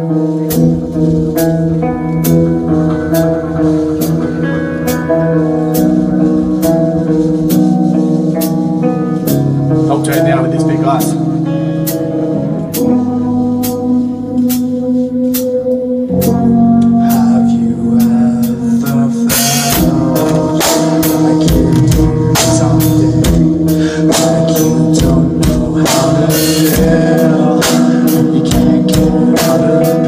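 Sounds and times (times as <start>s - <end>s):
bass guitar: 0.0s - 30.0s
drum kit: 0.0s - 30.0s
electric guitar: 0.0s - 30.0s.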